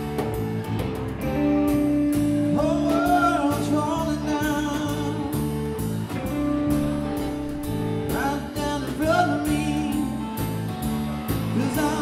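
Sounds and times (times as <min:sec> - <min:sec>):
bass guitar: 0:00.0 - 0:12.0
drum kit steady beat: 0:00.0 - 0:12.0
electric guitars: 0:00.0 - 0:12.0
person singing: 0:01.5 - 0:10.7, 0:11.3 - 0:12.0.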